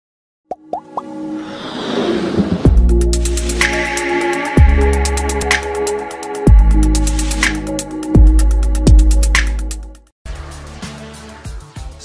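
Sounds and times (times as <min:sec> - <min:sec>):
quick rising pops: 0:00.5 - 0:03.8
electronic intro music: 0:00.7 - 0:11.8
whoosh: 0:01.4 - 0:04.3.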